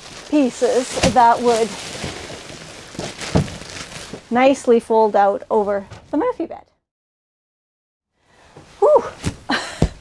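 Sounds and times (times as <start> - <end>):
plastic wrap crinkling: 0.0 - 4.6.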